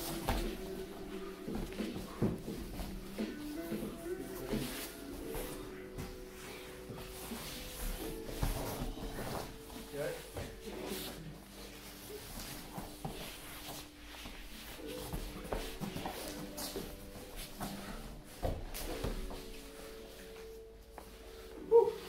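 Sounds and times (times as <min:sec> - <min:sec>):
bodies thumping on foam mats: 0:00.0 - 0:11.1, 0:11.9 - 0:20.6
background music: 0:00.0 - 0:22.0.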